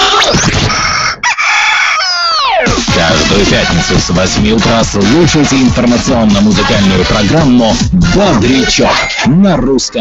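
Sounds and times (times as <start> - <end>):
rooster crowing: 0.7 - 2.6.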